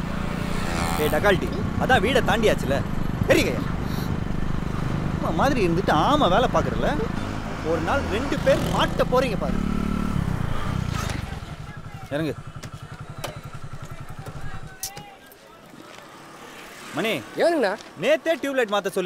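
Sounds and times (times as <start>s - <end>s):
motorcycle engine idling: 0.0s - 7.5s, 8.2s - 14.8s
voices: 10.6s - 19.0s.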